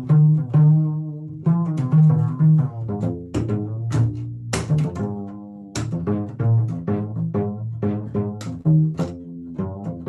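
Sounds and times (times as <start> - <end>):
plucked upright bass: 0.0 - 10.0.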